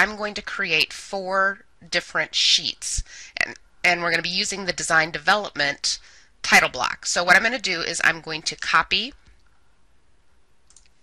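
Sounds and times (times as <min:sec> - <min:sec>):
computer mouse click: 0:10.6 - 0:11.0.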